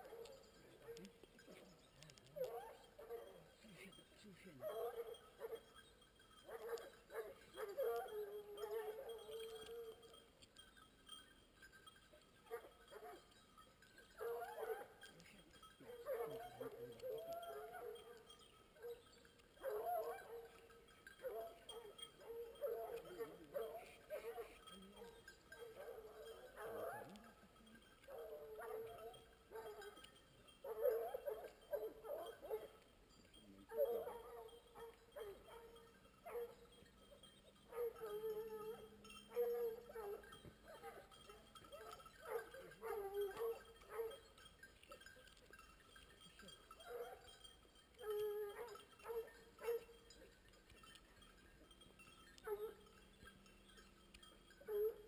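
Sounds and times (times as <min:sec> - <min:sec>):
hunting dogs baying: 0:00.0 - 0:55.0.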